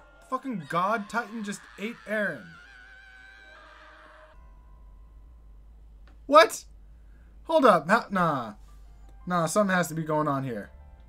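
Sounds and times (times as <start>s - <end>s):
high held note of soundtrack music: 0.0s - 5.6s
faint low hum: 2.4s - 11.0s.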